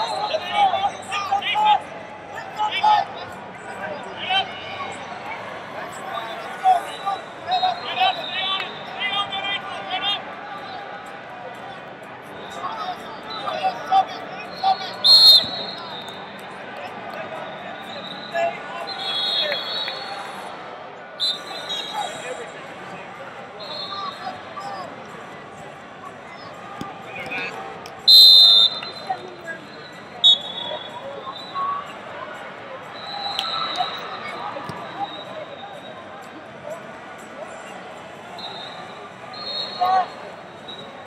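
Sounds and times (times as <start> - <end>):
crowd chatter in a hall: 0.0 - 41.0
shrill whistle blasts: 14.6 - 16.2, 17.8 - 20.1, 21.2 - 22.2, 23.6 - 24.2, 28.1 - 29.2, 30.2 - 31.7, 33.0 - 35.8, 38.4 - 40.9.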